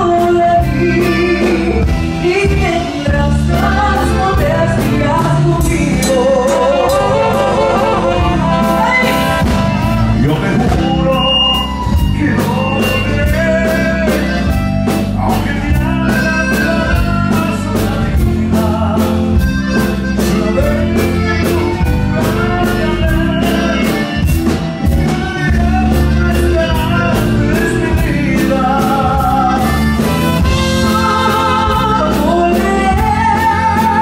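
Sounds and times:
steady drum beat: 0.0s - 34.0s
woman singing lead: 0.0s - 34.0s
trumpets and horns: 6.1s - 12.0s.

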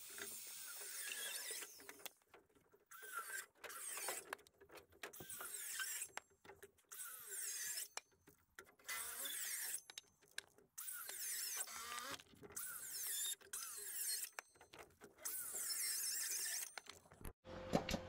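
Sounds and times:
circular saw cutting wood: 0.0s - 2.0s, 2.9s - 4.3s, 5.2s - 6.2s, 6.9s - 8.0s, 8.8s - 9.9s, 10.8s - 14.6s, 15.2s - 17.0s.

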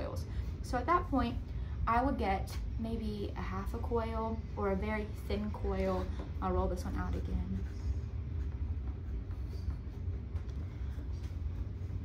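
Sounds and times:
steady low hum: 0.0s - 12.0s
clay rubbing on canvas board: 6.9s - 12.0s.

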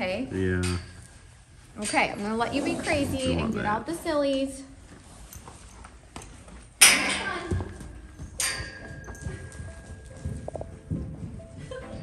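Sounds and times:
hooves on sand: 7.4s - 12.0s
held tone of background music: 8.0s - 12.0s.

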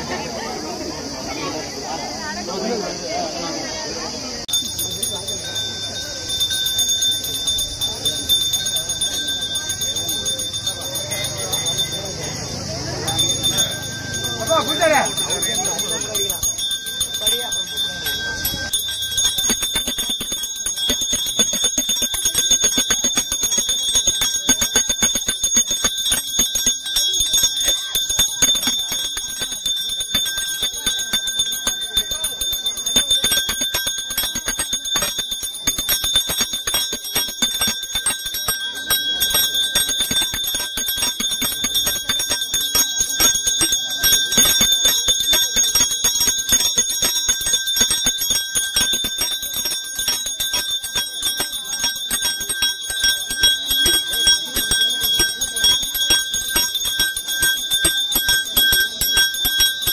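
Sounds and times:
brass hand bell rung rapidly: 4.4s - 59.9s.

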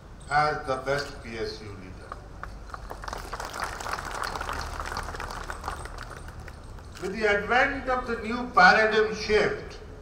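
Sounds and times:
audience applauding: 2.4s - 6.8s.

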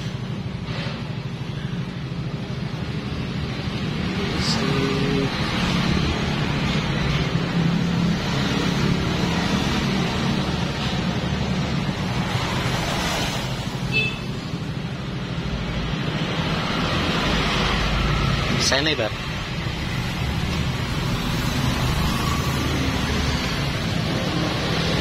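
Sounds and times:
noise rush over microphone: 0.0s - 25.0s.

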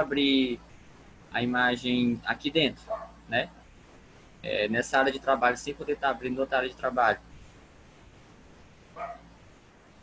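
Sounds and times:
dog barking: 2.8s - 3.2s, 9.0s - 9.3s.

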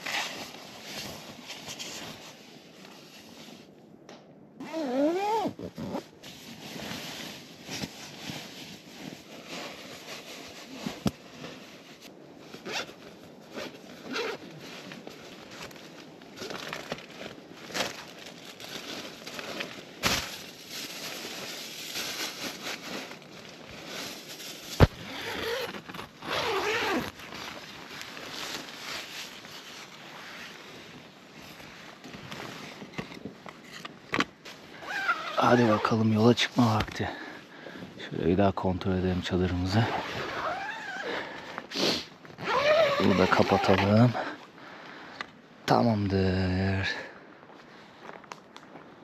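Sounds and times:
zipper pulled: 0.0s - 2.2s, 4.6s - 7.0s, 12.6s - 14.6s, 24.8s - 28.8s, 33.6s - 35.9s, 39.8s - 44.2s
camping gear clicks and knocks: 31.4s - 35.4s.

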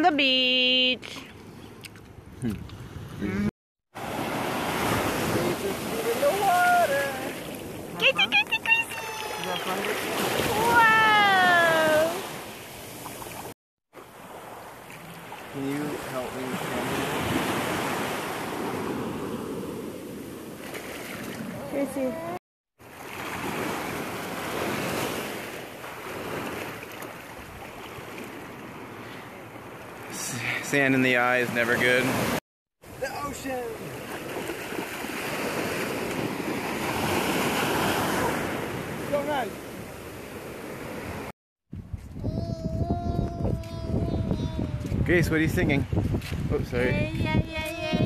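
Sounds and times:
small waves washing over sand: 3.9s - 41.3s
wind buffeting microphone: 41.7s - 48.0s.

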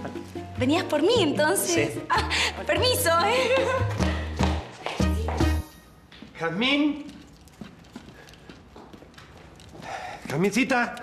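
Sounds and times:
footsteps on wooden floor: 3.5s - 6.4s, 7.0s - 10.4s.

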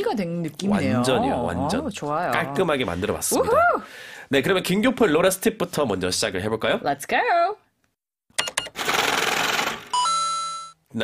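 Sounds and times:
rapid mechanical clatter: 8.4s - 10.0s
bell tone: 10.0s - 10.8s.

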